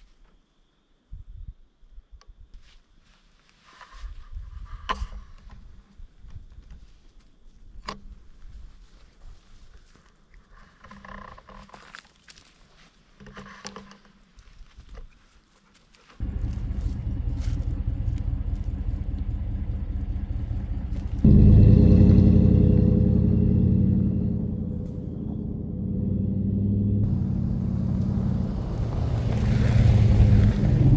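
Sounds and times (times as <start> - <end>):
pickup truck engine rumbling: 16.2 - 30.9.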